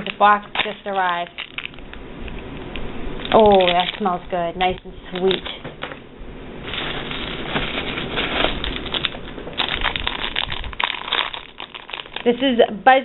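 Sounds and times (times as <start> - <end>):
plastic packaging crinkling: 0.0 - 2.4, 3.2 - 5.7, 6.6 - 12.7.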